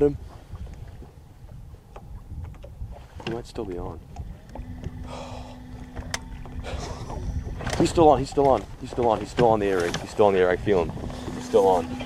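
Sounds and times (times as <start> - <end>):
wind buffeting microphone: 0.0 - 12.0
steady low hum: 3.9 - 9.2, 10.4 - 12.0.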